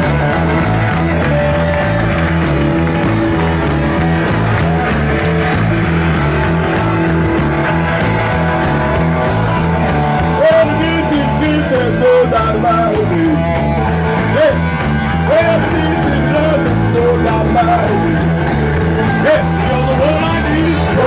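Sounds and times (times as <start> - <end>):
bending lead guitar line: 0.0 - 21.0
garage rock band playing: 0.0 - 21.0.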